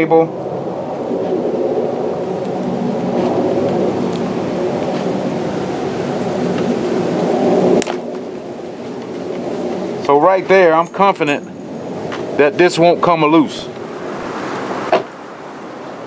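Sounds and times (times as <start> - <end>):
tape snapping: 7.8 - 8.1.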